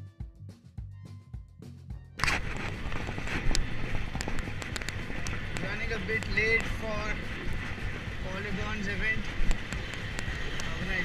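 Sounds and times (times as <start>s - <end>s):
music with a beat: 0.0s - 2.3s
wind noise on microphone: 2.1s - 11.0s.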